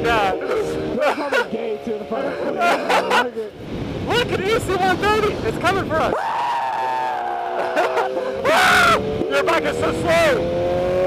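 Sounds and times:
person screaming high-pitched: 6.1 - 9.0.

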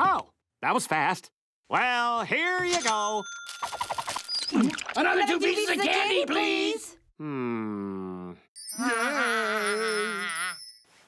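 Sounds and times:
twinkling sparkle sound effect: 2.6 - 4.9
cartoon voices humming mmm: 7.2 - 10.6.

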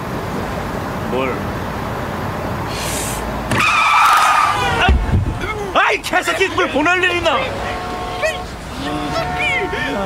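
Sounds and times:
car road rumble: 0.0 - 10.0
tires squealing: 2.7 - 10.0.

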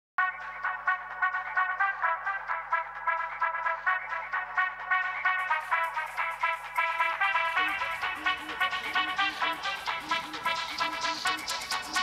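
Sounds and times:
upbeat brass tune with trumpets: 0.2 - 12.0.

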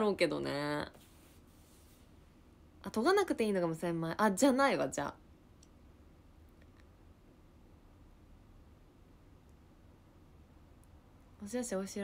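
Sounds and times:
woman's voice: 0.0 - 1.0, 2.8 - 5.2, 11.4 - 12.0.

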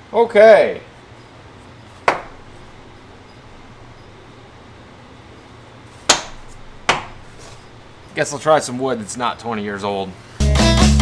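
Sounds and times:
low steady hum: 0.0 - 10.4.

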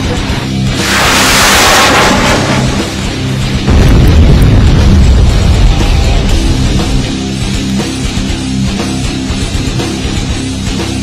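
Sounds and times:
heavy rock music: 0.0 - 11.0
rocket motor whoosh: 0.6 - 3.6.

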